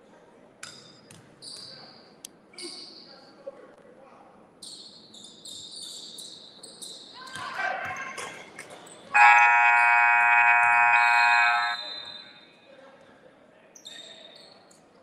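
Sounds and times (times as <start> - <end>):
people shouting: 9.2 - 11.9
scoreboard horn blast: 9.2 - 12.1.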